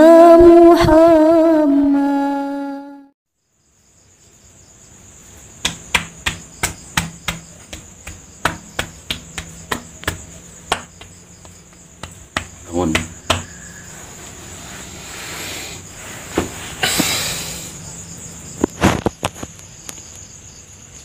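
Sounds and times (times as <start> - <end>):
crickets trilling: 3.4 - 21.0
hand slapping a person's back: 5.6 - 13.6.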